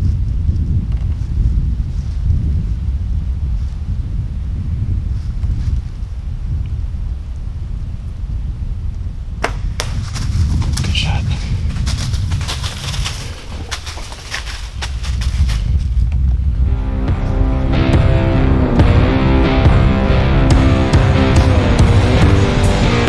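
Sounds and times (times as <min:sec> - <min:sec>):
wind rumbling on microphone: 0:00.0 - 0:23.0
crackling in dry leaves: 0:09.7 - 0:16.3
music: 0:16.6 - 0:23.0.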